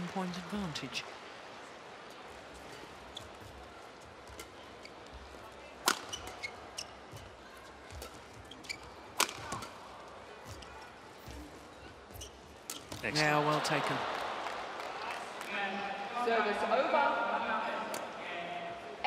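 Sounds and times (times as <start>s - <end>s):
arena crowd hum: 0.0s - 19.0s
rackets striking shuttlecock: 5.8s - 6.5s, 9.1s - 9.8s.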